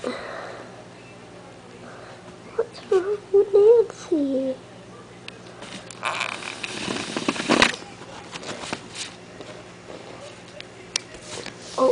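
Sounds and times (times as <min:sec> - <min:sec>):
rustling and scraping: 0:05.6 - 0:10.5.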